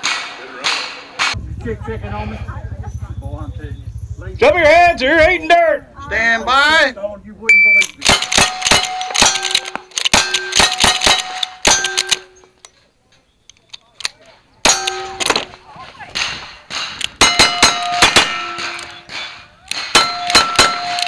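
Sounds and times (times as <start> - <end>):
steel plate targets ringing: 7.5 - 12.5, 14.6 - 21.0
rifle shots: 8.0 - 12.3, 14.6 - 21.0.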